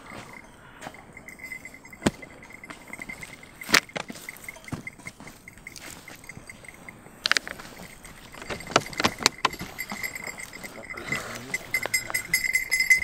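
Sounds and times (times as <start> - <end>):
person settling on ground: 0.0 - 13.0.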